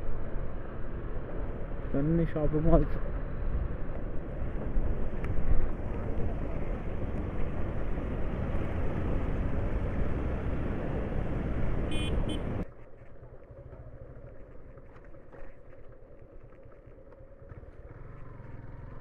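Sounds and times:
motorcycle engine running: 4.0s - 19.0s
horn beeps: 11.9s - 12.5s.

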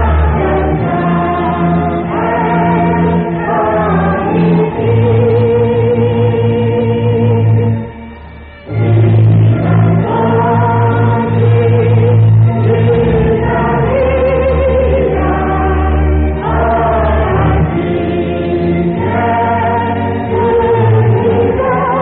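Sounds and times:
gospel choir singing: 0.0s - 22.0s
low musical accompaniment: 0.0s - 22.0s.

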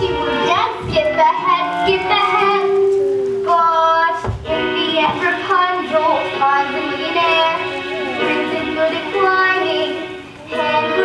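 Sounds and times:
girl singing long notes: 0.0s - 11.0s.

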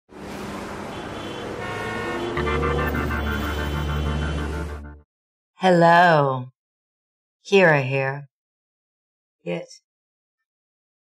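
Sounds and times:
city traffic noise: 0.1s - 5.0s
car horns: 0.4s - 5.0s
intro music: 2.2s - 5.0s.

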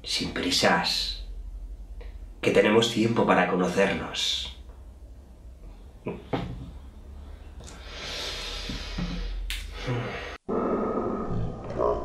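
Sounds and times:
low steady hum: 0.0s - 11.9s.

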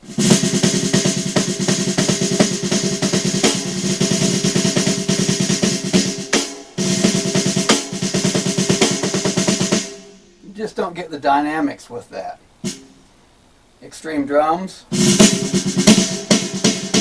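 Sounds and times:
electronic snare drum rolls: 0.0s - 10.4s, 12.6s - 13.0s, 14.9s - 17.0s.

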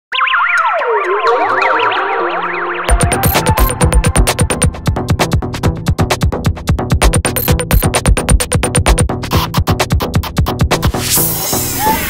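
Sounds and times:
electronic synthesizer music: 0.1s - 5.1s, 7.0s - 9.0s.

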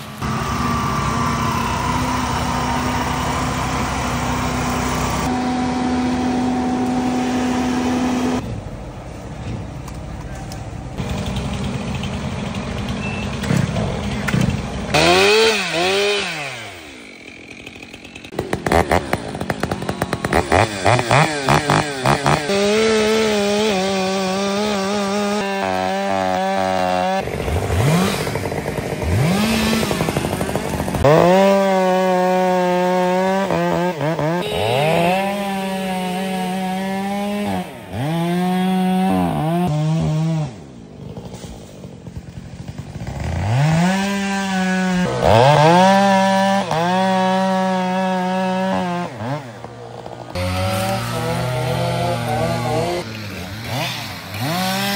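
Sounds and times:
chainsaws cutting wood: 0.0s - 8.4s, 11.0s - 54.9s.

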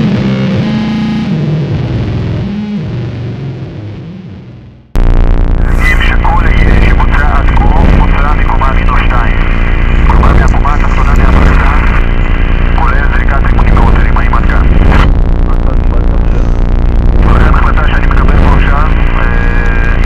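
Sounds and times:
distorted wall of noise: 0.0s - 20.0s
steady low drone: 0.0s - 20.0s
heavily distorted voice: 5.6s - 20.0s.

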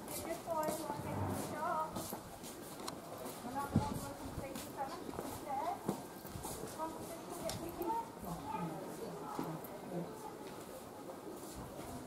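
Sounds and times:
footsteps on hard path: 0.0s - 7.8s
faint people talking: 0.0s - 12.0s.

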